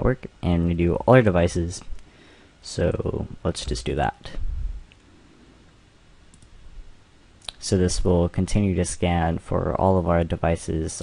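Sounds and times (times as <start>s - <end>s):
faint microphone hiss: 0.0s - 11.0s
computer mouse clicks: 6.3s - 6.6s.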